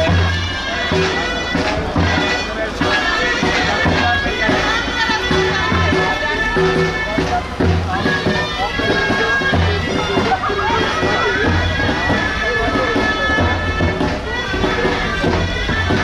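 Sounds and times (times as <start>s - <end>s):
low drum beat: 0.0s - 16.0s
reedy wind instrument melody: 0.0s - 16.0s.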